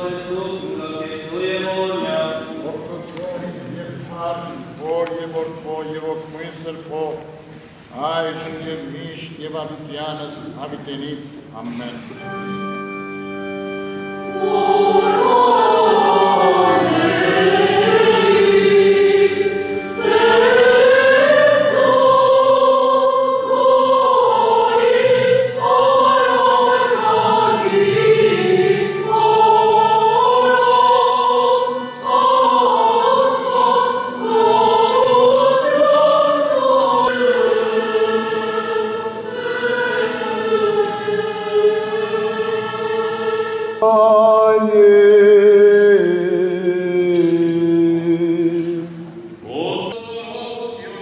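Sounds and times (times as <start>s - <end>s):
choir singing a slow hymn: 0.0s - 7.2s, 14.0s - 51.0s.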